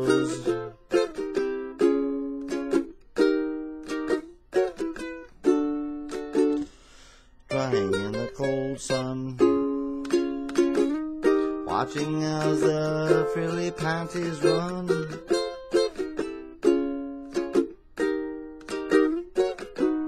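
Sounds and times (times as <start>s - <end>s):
ukulele strumming chords: 0.0s - 20.0s.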